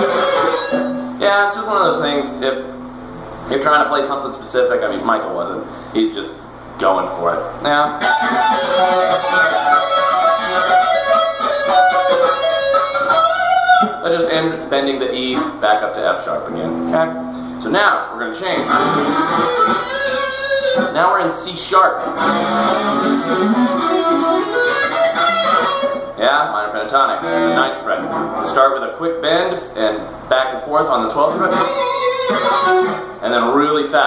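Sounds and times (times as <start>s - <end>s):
electric guitar fast lead: 0.0s - 1.2s, 7.9s - 14.3s, 18.5s - 21.0s, 22.0s - 26.2s, 27.2s - 28.6s, 31.3s - 33.2s.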